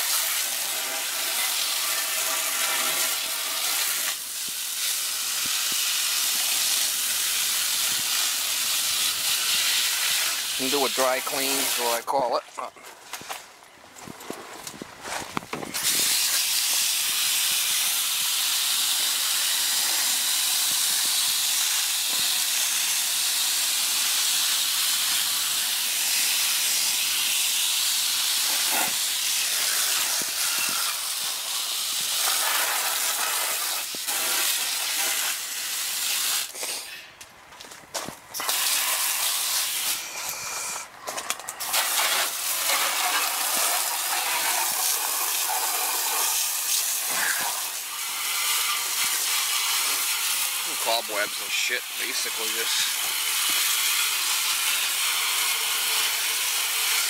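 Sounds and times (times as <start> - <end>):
hose nozzle spraying water: 0.0 - 12.3, 15.7 - 37.0, 38.3 - 57.0.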